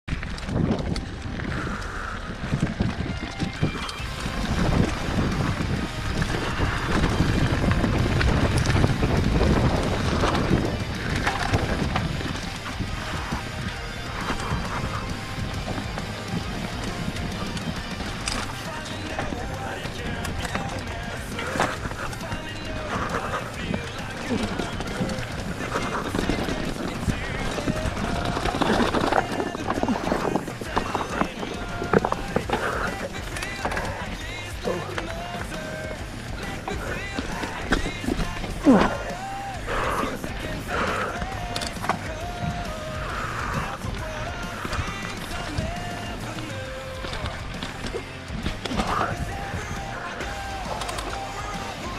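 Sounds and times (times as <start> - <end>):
bike rattling: 0.0 - 51.9
wind on microphone: 0.1 - 41.4
bike tyres crackling over leaves: 0.1 - 51.9.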